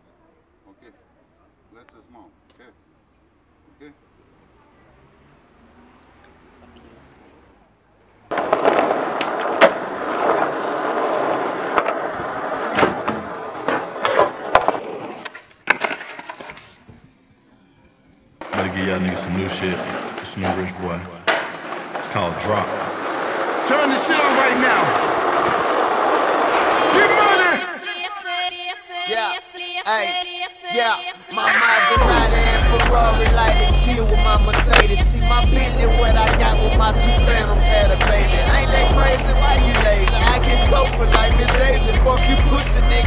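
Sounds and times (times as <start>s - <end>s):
skateboard wheels rolling on pavement: 4.9s - 17.1s, 18.4s - 28.4s, 30.8s - 43.0s.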